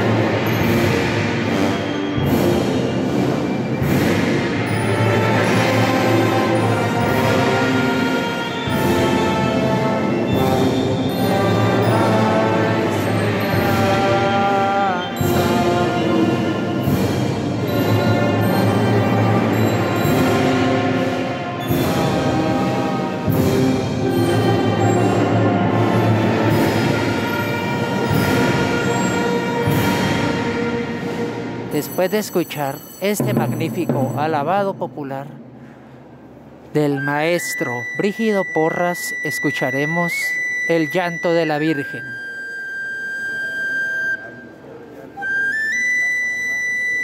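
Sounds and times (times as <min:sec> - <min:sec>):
band playing slow processional music: 0:00.0 - 0:34.3, 0:36.4 - 0:47.0.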